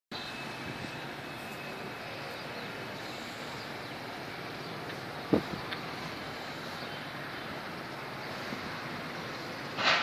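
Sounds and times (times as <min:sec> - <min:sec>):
city ambience: 0:00.1 - 0:10.0.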